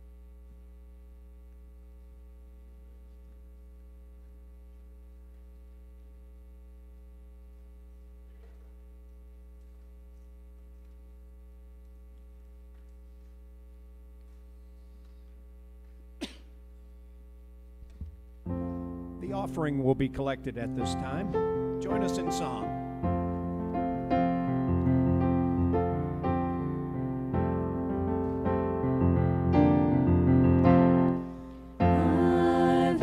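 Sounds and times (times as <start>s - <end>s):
electrical mains hum: 0.0s - 33.0s.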